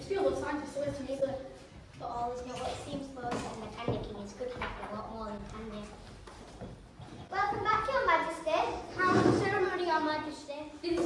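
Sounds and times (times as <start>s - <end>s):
child speaking lines: 7.3s - 11.0s.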